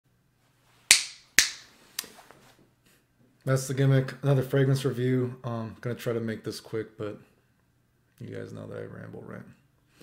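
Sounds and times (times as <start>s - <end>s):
finger snaps: 0.9s - 2.1s.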